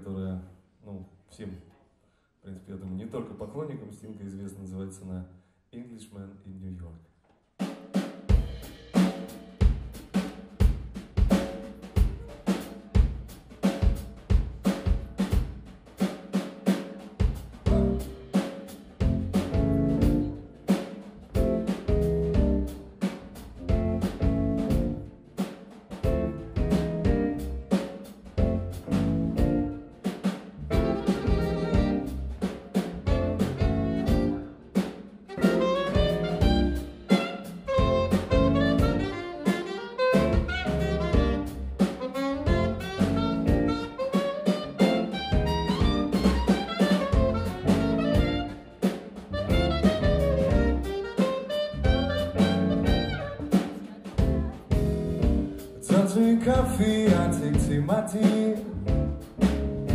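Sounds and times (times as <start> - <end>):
drum kit beat: 7.4 - 59.9
bass line: 17.3 - 20.6, 21.2 - 25.2, 26.0 - 29.9, 30.6 - 59.9
saxophone melody: 17.7 - 18.4, 30.6 - 55.8.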